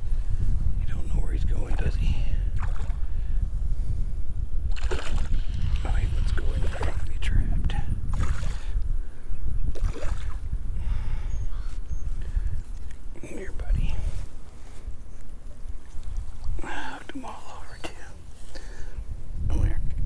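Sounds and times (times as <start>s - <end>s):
low muttering: 0.0s - 20.0s
wind rumble on microphone: 0.0s - 20.0s
fish splashing in water: 4.7s - 5.6s.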